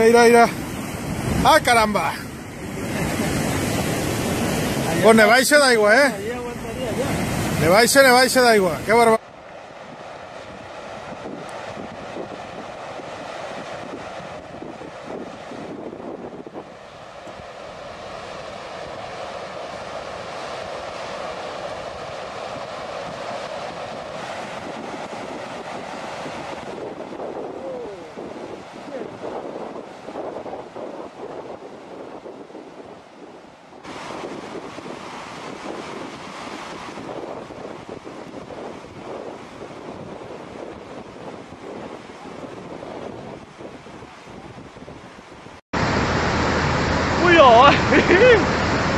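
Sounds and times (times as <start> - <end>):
wind buffeting microphone: 0.0 - 48.9.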